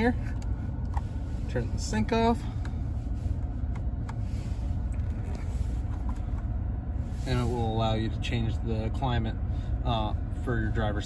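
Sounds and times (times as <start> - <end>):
climate fan running: 0.0 - 11.0.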